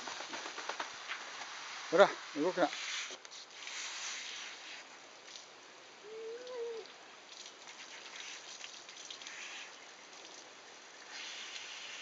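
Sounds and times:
hose water spraying on dog: 0:01.0 - 0:05.5, 0:06.1 - 0:12.0.

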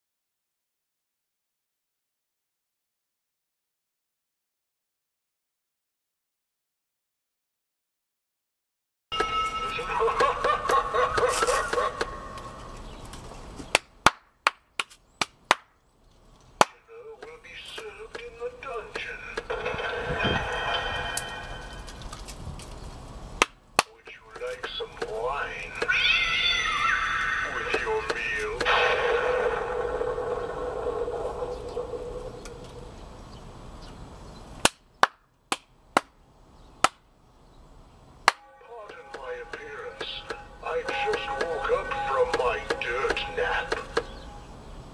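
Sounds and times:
recorded cackling laugh through speaker: 0:09.7 - 0:12.0
steady electronic tone: 0:28.6 - 0:33.0.

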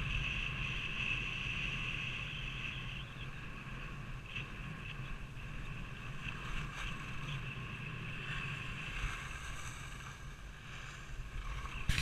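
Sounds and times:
wind noise on microphone: 0:00.0 - 0:12.0
skis sliding on snow: 0:08.4 - 0:12.0.

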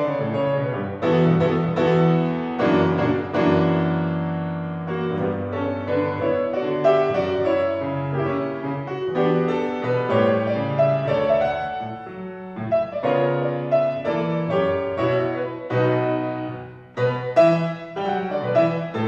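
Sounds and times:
solo grand piano: 0:00.0 - 0:19.0.

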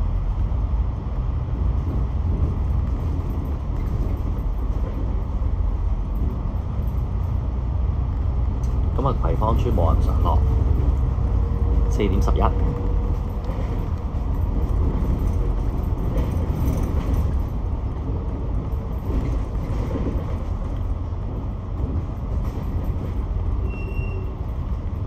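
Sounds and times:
bus engine and road rumble: 0:00.0 - 0:25.0.

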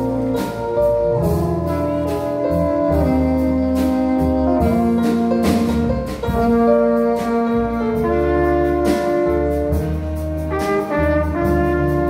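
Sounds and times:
double bass: 0:00.0 - 0:12.0
drums and cymbal strokes: 0:00.0 - 0:12.0
horns holding chords: 0:00.0 - 0:12.0
piano: 0:00.0 - 0:12.0.

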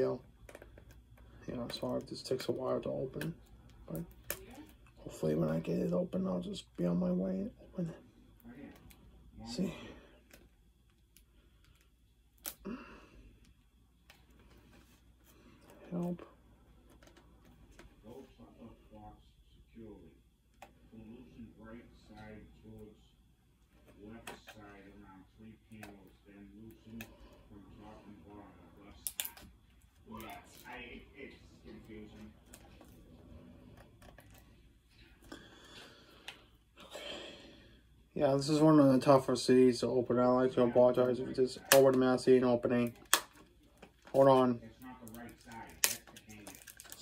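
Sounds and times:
fingers picking plastic packaging: 0:45.0 - 0:47.0.

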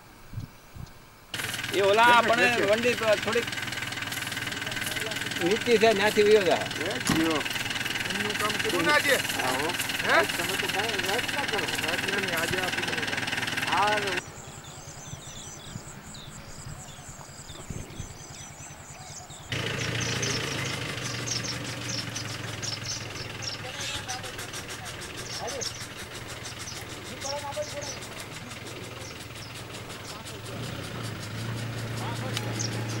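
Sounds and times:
vehicle engine idling: 0:01.3 - 0:17.4, 0:18.1 - 0:33.0.

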